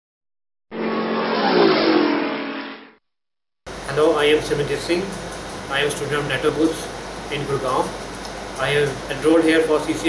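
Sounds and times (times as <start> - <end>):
car engine revving past: 0.7 - 2.9.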